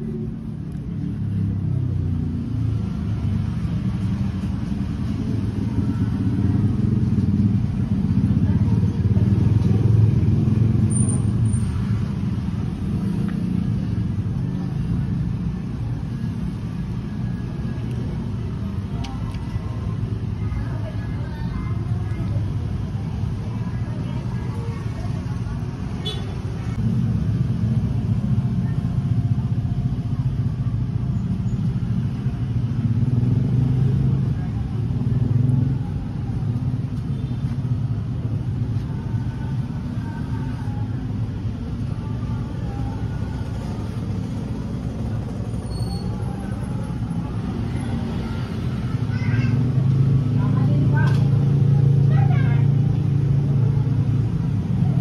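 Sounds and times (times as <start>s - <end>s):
road traffic rumble: 0.0s - 55.0s.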